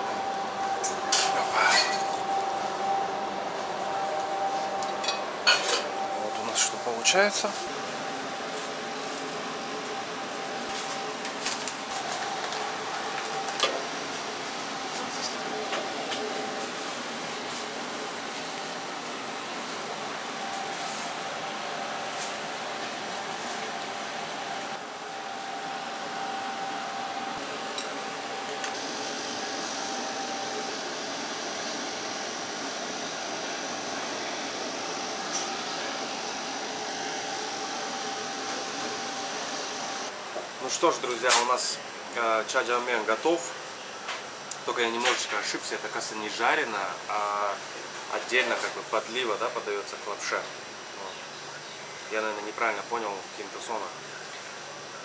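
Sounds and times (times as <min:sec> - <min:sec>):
constant hum: 0:00.0 - 0:55.0
thin high whine: 0:00.0 - 0:55.0.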